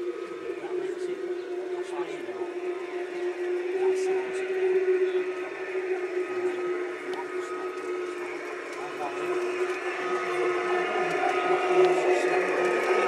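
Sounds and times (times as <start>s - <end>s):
faint people talking: 0.0s - 13.0s
steady hum: 0.0s - 13.0s.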